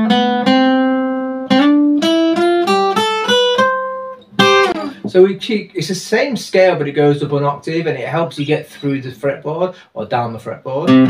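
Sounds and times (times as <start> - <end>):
acoustic guitar plucking a scale: 0.0 - 5.5.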